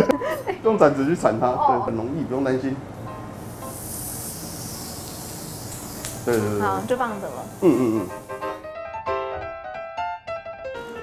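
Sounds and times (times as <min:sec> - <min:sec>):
steak sizzling on griddle: 0:03.2 - 0:08.6.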